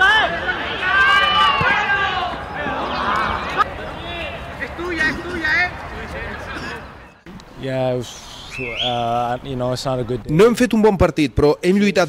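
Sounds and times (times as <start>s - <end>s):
players shouting: 0.0s - 7.1s
outdoor background noise: 0.0s - 12.0s.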